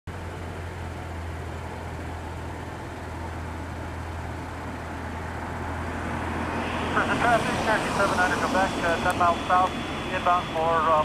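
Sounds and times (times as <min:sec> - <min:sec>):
aircraft engine idling: 0:00.1 - 0:11.0.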